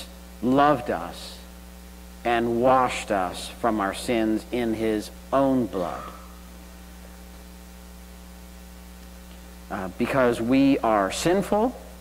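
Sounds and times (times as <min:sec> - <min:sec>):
electrical mains hum: 0:00.0 - 0:12.0
man's voice: 0:02.3 - 0:06.3, 0:09.7 - 0:11.9.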